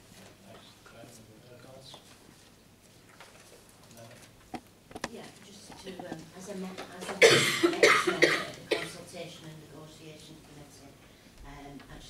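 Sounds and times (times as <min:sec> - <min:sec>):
person coughing hard: 0:07.2 - 0:09.0.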